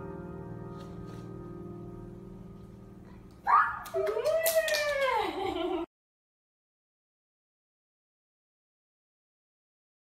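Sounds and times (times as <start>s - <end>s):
hand claps: 3.8s - 5.2s.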